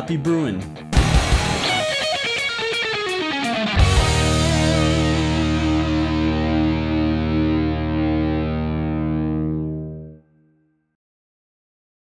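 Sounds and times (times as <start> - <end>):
distorted electric guitar chord: 0.8 - 10.2.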